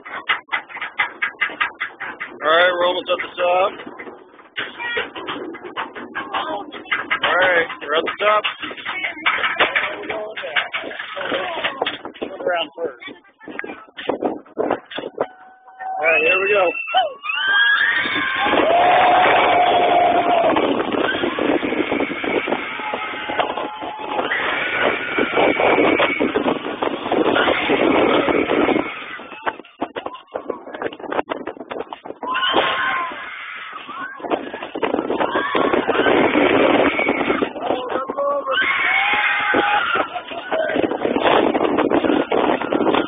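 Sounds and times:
roller coaster train on track: 0.0 - 43.0
wind rushing over microphone: 0.0 - 43.0
riders yelling and screaming: 15.3 - 29.6, 32.2 - 43.0.

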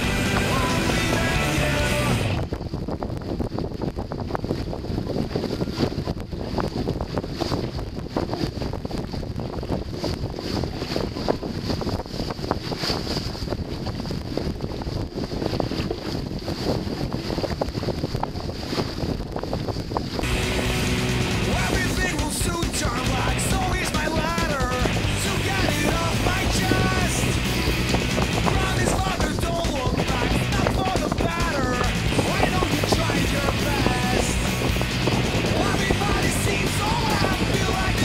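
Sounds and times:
music: 0.0 - 2.4, 20.2 - 38.0
water rushing along boat hull: 0.0 - 38.0
wind buffeting microphone: 0.0 - 38.0.

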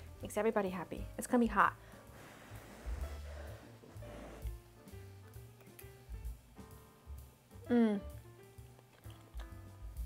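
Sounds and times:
quiet background music: 0.0 - 10.0
person blowing on food: 1.9 - 5.0, 7.6 - 8.2.

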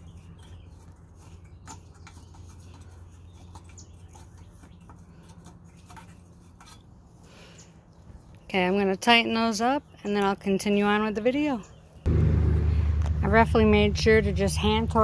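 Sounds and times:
steady low hum: 12.0 - 15.0.

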